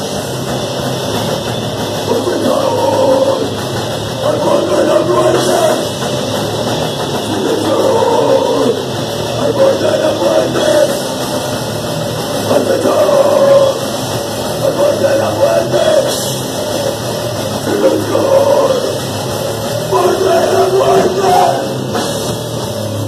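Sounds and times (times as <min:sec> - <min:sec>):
bass guitar: 0:00.0 - 0:23.0
drum kit: 0:00.0 - 0:23.0
electric guitar: 0:00.0 - 0:23.0
person singing: 0:02.1 - 0:03.6, 0:04.2 - 0:05.9, 0:07.3 - 0:11.0, 0:12.5 - 0:13.9, 0:14.6 - 0:16.2, 0:17.7 - 0:19.0, 0:19.9 - 0:21.8.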